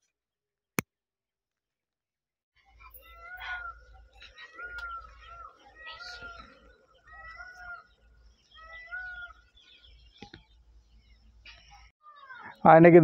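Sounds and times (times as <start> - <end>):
animal calls: 2.8 - 9.9, 11.6 - 12.6.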